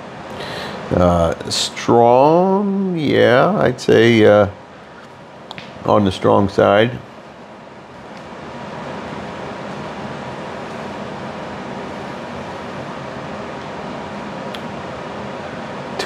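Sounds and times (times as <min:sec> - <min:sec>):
faint hum: 0:00.0 - 0:16.0
room hiss: 0:00.0 - 0:16.0.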